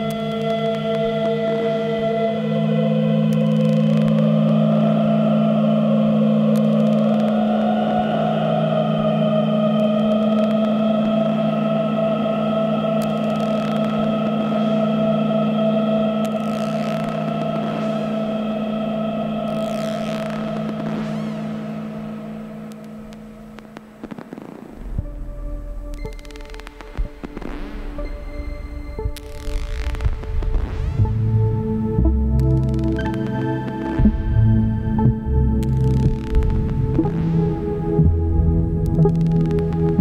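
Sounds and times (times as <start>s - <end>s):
high filter sweeps: 0.0s - 40.0s
low synthesizer drone: 0.0s - 40.0s
rising hissing synth noise: 3.6s - 40.0s
sharp clicks: 25.9s - 28.1s, 38.8s - 40.0s.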